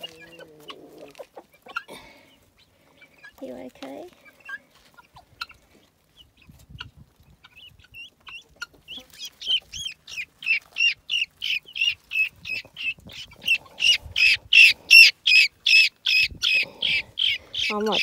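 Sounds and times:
guinea fowl calling: 0:00.0 - 0:03.5, 0:04.1 - 0:18.0.

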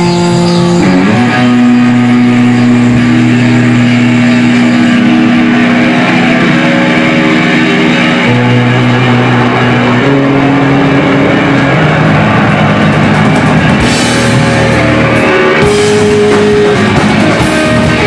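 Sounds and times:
droning low note: 0:00.0 - 0:18.0
sustained electric guitar notes: 0:00.0 - 0:18.0.

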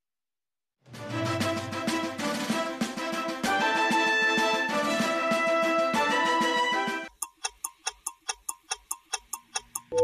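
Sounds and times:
clock-like ticking: 0:07.1 - 0:10.0.

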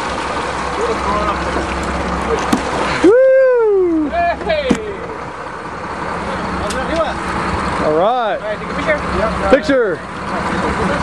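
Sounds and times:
boat engine droning: 0:00.0 - 0:11.0
water and wind noise: 0:00.0 - 0:11.0.

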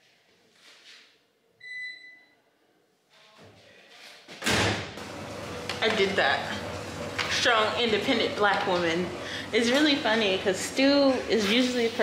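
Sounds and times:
electronic beep: 0:01.6 - 0:02.3
loud thump: 0:04.4 - 0:05.0.

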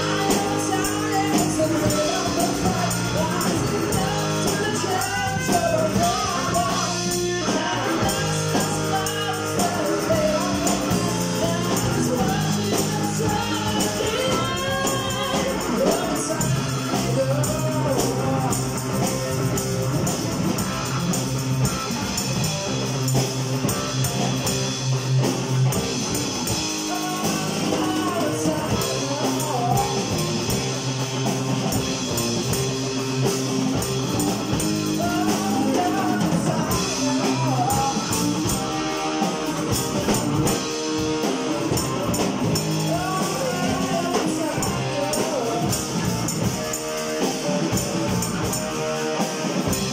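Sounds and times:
woman singing into a microphone: 0:00.0 - 0:18.6, 0:26.8 - 0:30.2, 0:35.0 - 0:38.6, 0:42.8 - 0:45.8
bass guitar: 0:00.0 - 0:49.9
drum kit: 0:00.0 - 0:49.9
electric guitar: 0:00.0 - 0:49.9.

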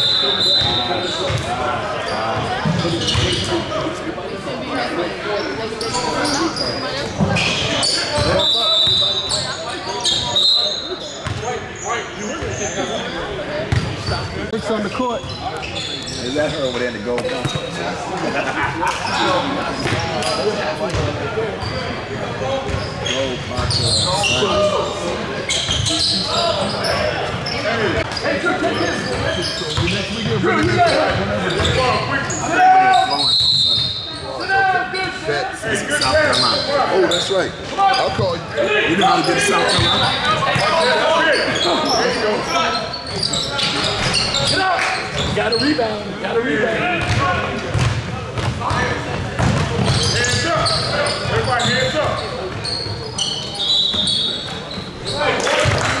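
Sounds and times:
chatter of people: 0:00.0 - 0:56.0
short high squeaks or whistles: 0:33.1 - 0:34.3, 0:50.7 - 0:55.2
basketballs bouncing on hardwood: 0:47.0 - 0:48.7, 0:49.4 - 0:50.0.

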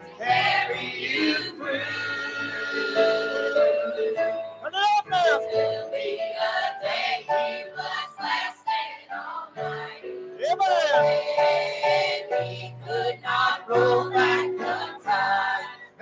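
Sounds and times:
choir singing gospel song: 0:00.0 - 0:04.6, 0:05.2 - 0:16.0.

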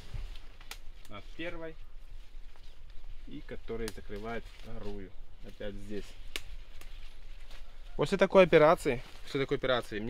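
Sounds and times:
plant stalk snapping: 0:00.6 - 0:01.2, 0:06.3 - 0:07.0.

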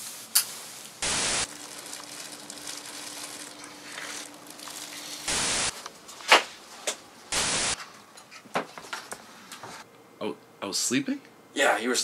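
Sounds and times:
white-noise static bursts: 0:01.0 - 0:01.9, 0:05.1 - 0:05.8, 0:07.3 - 0:07.8.

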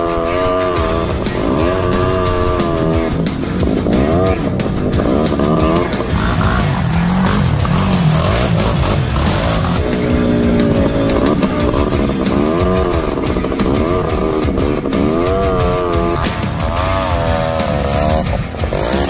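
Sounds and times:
background music: 0:00.0 - 0:19.0
off-road vehicle engine revving: 0:00.0 - 0:19.0.

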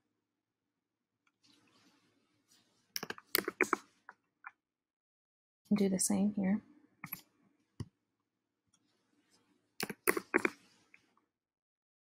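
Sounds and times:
keyboard typing: 0:03.0 - 0:03.8, 0:09.8 - 0:10.6.

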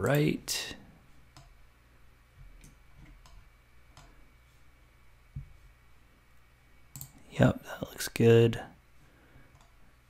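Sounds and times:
computer mouse clicks: 0:02.6 - 0:04.2, 0:06.9 - 0:07.2, 0:09.5 - 0:09.8.

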